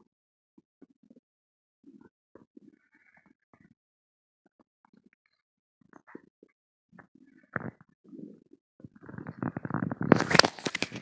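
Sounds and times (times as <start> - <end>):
stomach gurgling: 1.8 - 3.8, 4.4 - 11.0.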